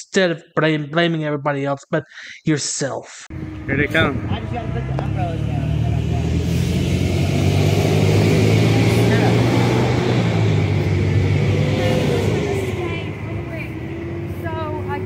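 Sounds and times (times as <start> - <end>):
vehicle passing on road: 3.3 - 15.0.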